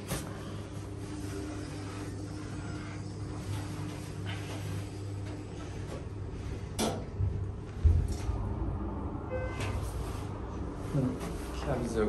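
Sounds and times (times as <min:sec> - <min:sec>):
elevator humming: 0:00.0 - 0:12.0.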